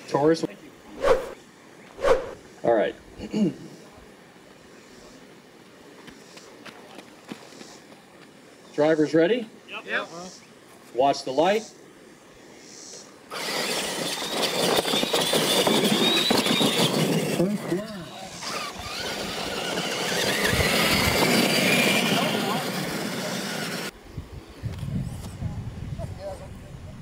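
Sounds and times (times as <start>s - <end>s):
electric motors and gears whining: 13.3s - 24.0s
tyres churning dirt: 13.3s - 24.0s.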